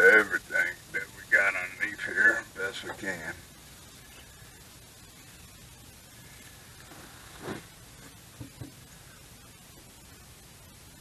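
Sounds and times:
low steady hiss: 0.0s - 11.0s
light knocks: 8.4s - 8.8s.

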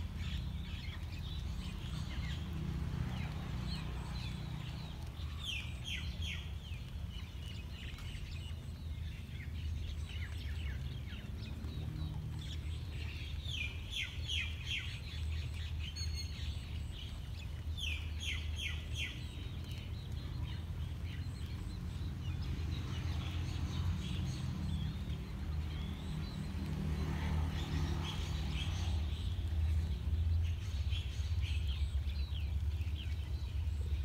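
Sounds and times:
songbird singing: 0.0s - 34.0s.

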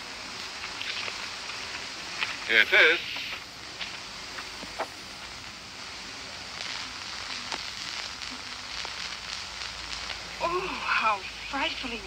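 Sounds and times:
film soundtrack hiss and crackle: 0.0s - 12.0s.

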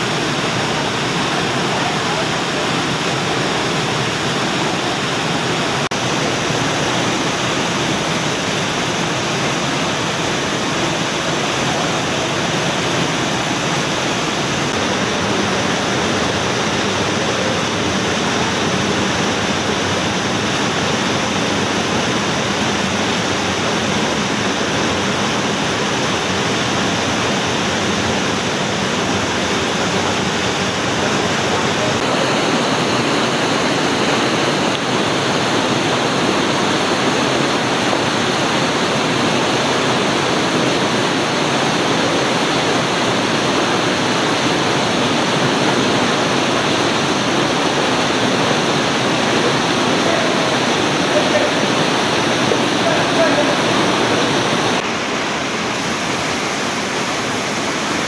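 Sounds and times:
mountain torrent rushing: 0.0s - 58.0s.

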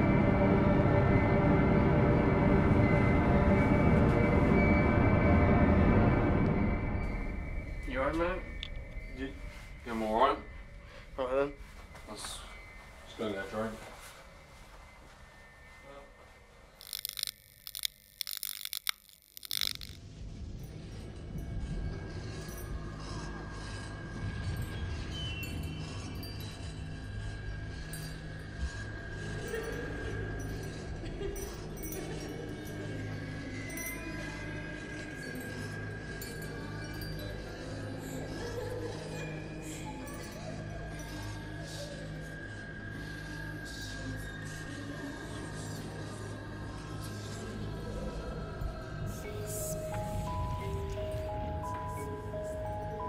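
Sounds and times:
droning horror film score: 0.0s - 53.0s.

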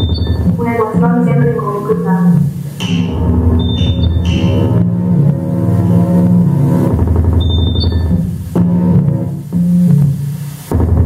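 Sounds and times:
short high beeping tones: 0.0s - 0.6s, 2.8s - 4.8s, 7.4s - 8.2s
low rapidly pulsing bass: 0.0s - 11.0s
synthesizer drones: 0.0s - 11.0s.

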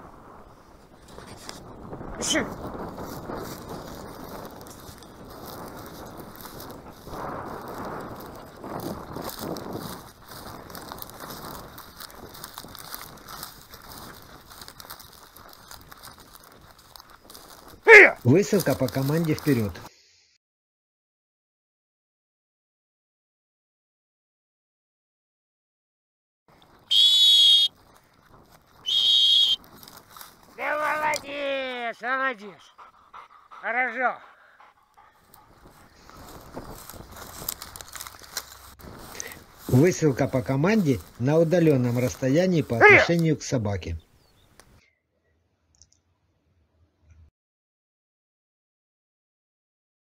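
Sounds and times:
footsteps on dry grass: 1.0s - 19.9s, 26.5s - 31.9s, 34.6s - 43.4s
dog training whistle blasts: 26.9s - 27.7s, 28.8s - 29.6s.

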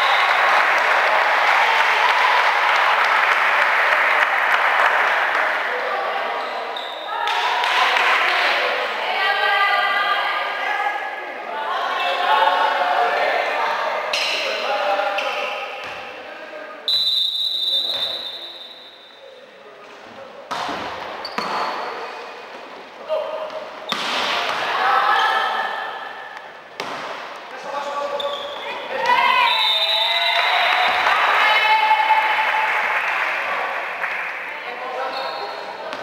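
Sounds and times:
referee's whistle: 16.9s - 19.2s, 29.4s - 31.0s
volleyball being hit: 20.5s - 21.7s, 23.5s - 24.8s, 26.8s - 27.4s.

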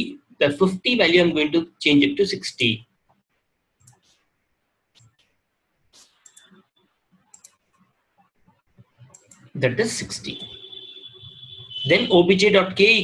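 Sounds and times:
faint clicks: 7.2s - 9.5s.

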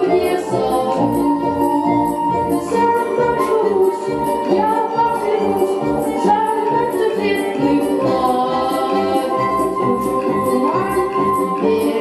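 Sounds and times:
choir-like voices: 0.0s - 12.0s.

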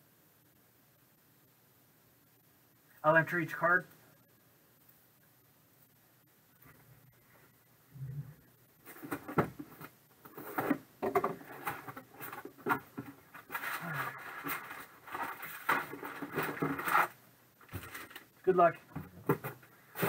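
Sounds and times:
envelopes rustling and scraping: 8.8s - 20.0s.

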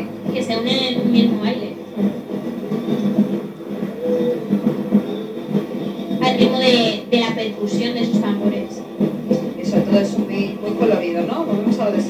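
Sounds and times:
drum-led percussion music: 0.0s - 12.0s.

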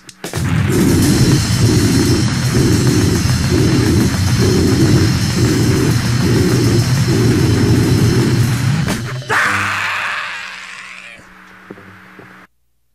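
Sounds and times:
distorted punk guitar and bass riff: 0.2s - 12.5s.

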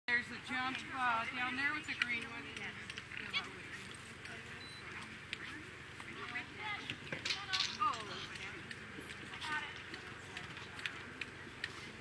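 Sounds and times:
people talking: 0.1s - 12.0s.

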